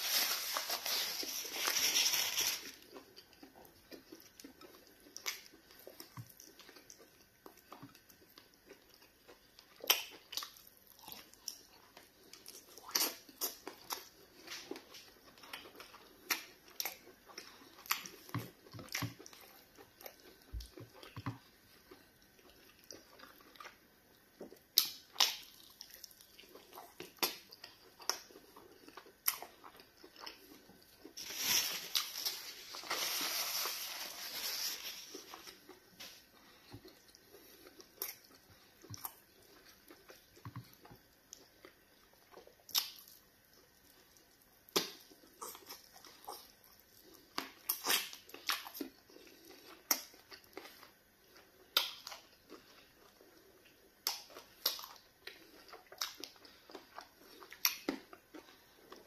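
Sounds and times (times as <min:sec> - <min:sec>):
chewing and biting food: 0:00.5 - 0:33.0, 0:35.1 - 0:59.0.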